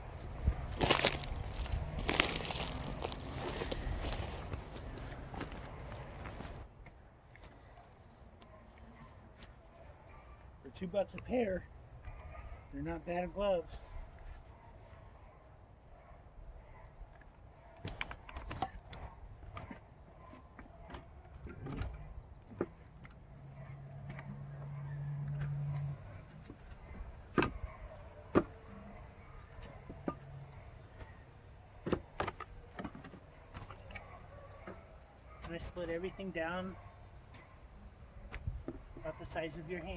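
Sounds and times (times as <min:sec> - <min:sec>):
wooden knocks and clatter: 0:31.8 - 0:33.8.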